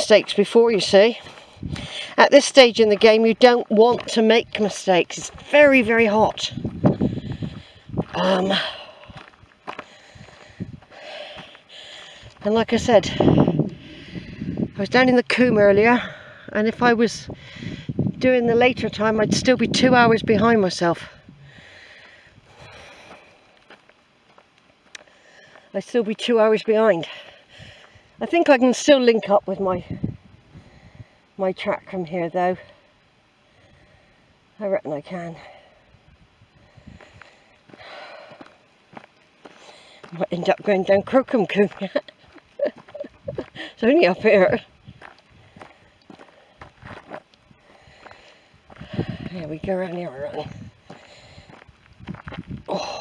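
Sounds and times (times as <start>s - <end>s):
footsteps crunching on gravel: 0.0s - 14.9s, 21.6s - 28.0s, 37.0s - 53.0s
faint outdoor air: 0.0s - 53.0s
person breathing out: 1.5s - 2.2s, 13.2s - 14.6s, 21.4s - 23.5s.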